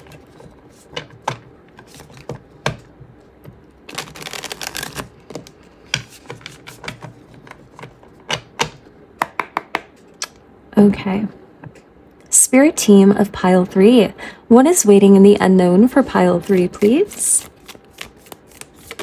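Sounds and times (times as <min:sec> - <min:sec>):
cards being shuffled: 0:03.9 - 0:08.1, 0:16.4 - 0:19.0.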